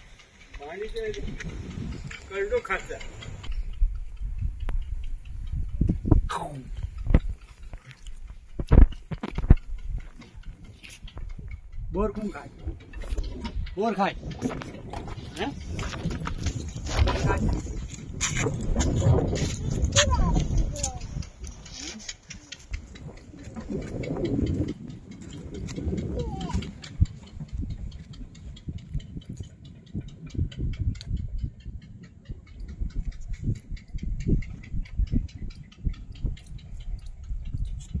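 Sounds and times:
fast run of faint ticks: 0:00.0 - 0:38.0
low bumps: 0:00.0 - 0:38.0
wind rumble on microphone: 0:00.0 - 0:38.0
voices: 0:00.5 - 0:03.5, 0:06.3 - 0:06.8, 0:11.9 - 0:24.7, 0:25.7 - 0:27.2.

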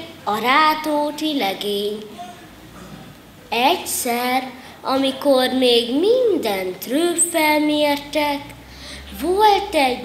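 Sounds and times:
boy telling a story: 0:00.0 - 0:02.3, 0:03.4 - 0:10.0.

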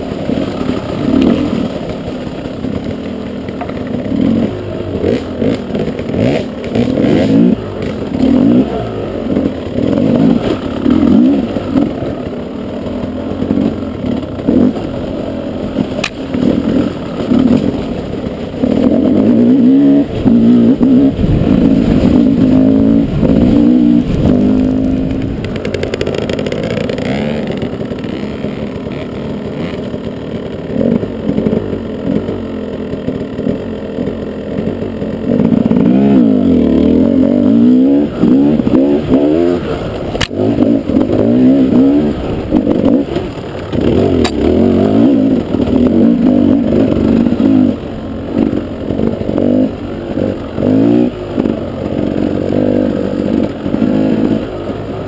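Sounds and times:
motorbike engine revving: 0:00.0 - 0:55.0.

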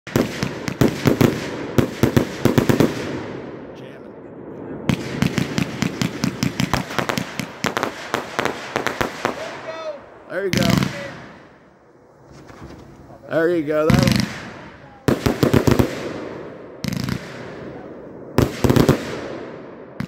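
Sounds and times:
fireworks launching and cracking: 0:00.1 - 0:03.9, 0:04.6 - 0:20.0.

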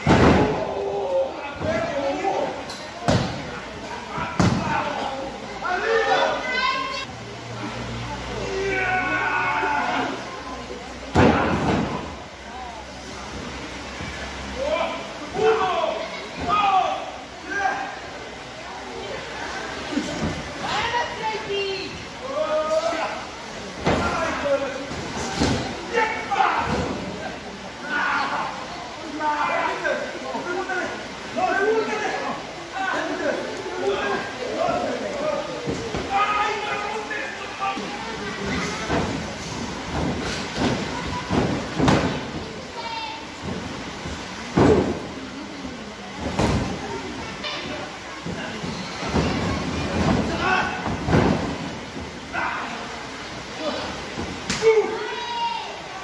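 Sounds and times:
people shouting: 0:08.4 - 0:10.3, 0:25.4 - 0:27.0, 0:35.9 - 0:39.1, 0:49.1 - 0:51.5, 0:52.3 - 0:52.9
body slamming onto ring canvas: 0:38.8 - 0:42.5.

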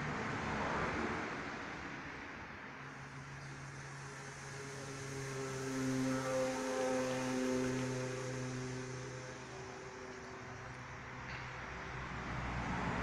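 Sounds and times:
vehicle passing by: 0:00.0 - 0:13.0.

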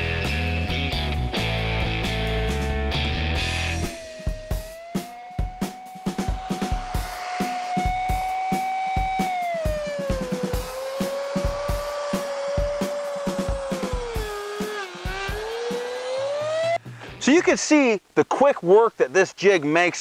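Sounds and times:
rock music with drum beat: 0:00.0 - 0:17.2
router whining: 0:03.4 - 0:16.8.

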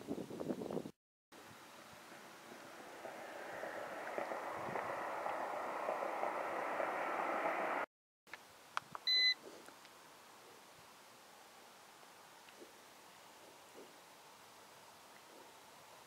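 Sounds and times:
rushing noise: 0:01.7 - 0:07.9.

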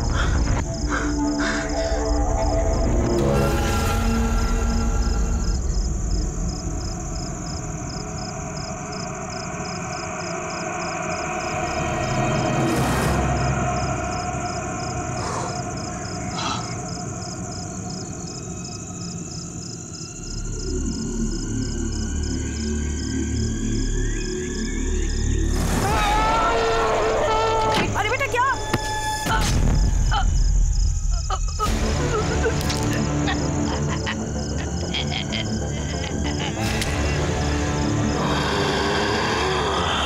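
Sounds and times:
sustained drone: 0:00.0 - 0:19.6.

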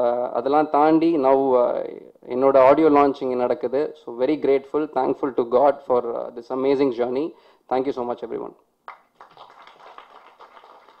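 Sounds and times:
audience applauding: 0:08.9 - 0:11.0.

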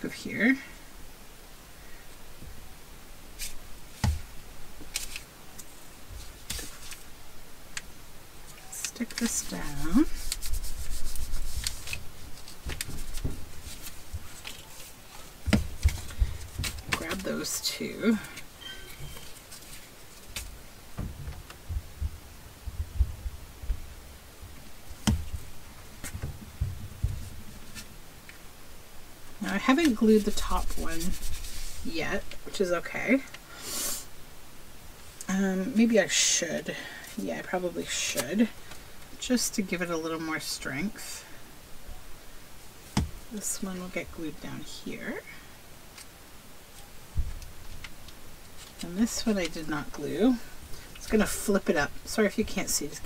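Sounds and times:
paper rustling: 0:04.8 - 0:07.1, 0:08.6 - 0:17.6, 0:18.2 - 0:20.6, 0:27.0 - 0:27.9, 0:29.5 - 0:31.9, 0:46.7 - 0:49.4
soft low bumps on tabletop: 0:21.0 - 0:23.9, 0:25.0 - 0:27.3.

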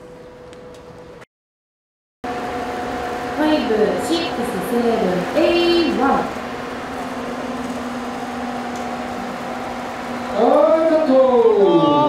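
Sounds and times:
low even hum: 0:02.3 - 0:12.0.

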